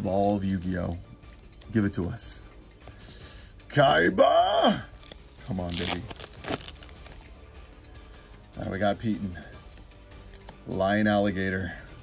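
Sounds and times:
quiet background music: 0:00.0 - 0:12.0
foil wrapper crinkling and tearing: 0:04.9 - 0:07.3.

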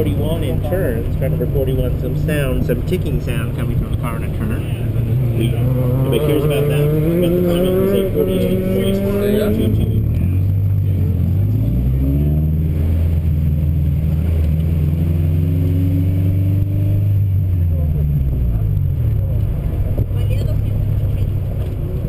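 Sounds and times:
car engine revving: 0:00.0 - 0:22.0.

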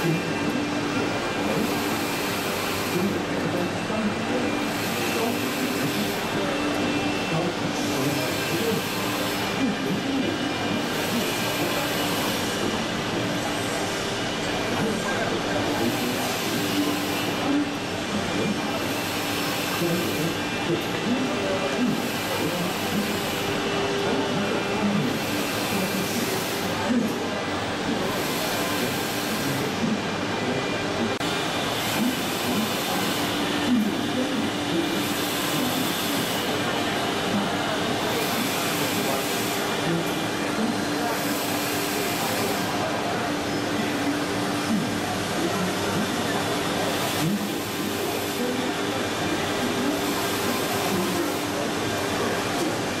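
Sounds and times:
crowd noise: 0:00.0 - 0:53.0
machinery rumble and hiss: 0:00.0 - 0:53.0.

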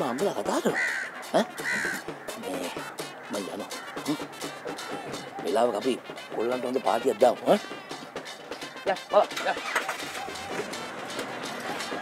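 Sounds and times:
crow cawing: 0:00.0 - 0:06.2, 0:07.6 - 0:12.0.

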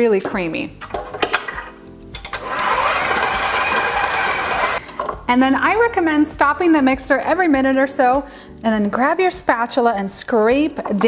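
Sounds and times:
stand mixer motor running: 0:02.3 - 0:04.8.

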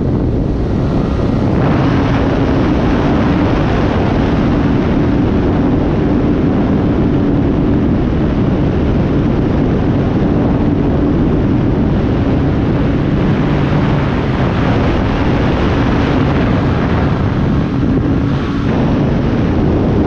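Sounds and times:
electric motor and propeller whine: 0:00.0 - 0:20.0
wind buffeting microphone: 0:00.0 - 0:20.0.

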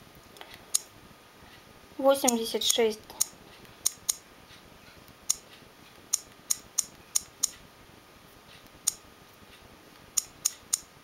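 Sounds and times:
sharp light clicks: 0:02.2 - 0:04.2, 0:05.2 - 0:07.6, 0:08.8 - 0:09.0, 0:10.0 - 0:10.9.

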